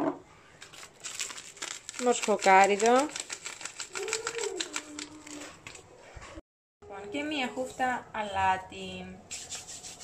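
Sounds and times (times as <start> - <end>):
plastic packet shaken and tapped: 0.6 - 5.8.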